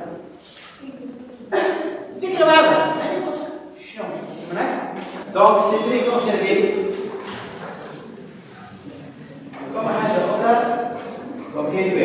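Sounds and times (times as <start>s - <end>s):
man speaking: 1.5s - 7.2s, 9.6s - 12.0s.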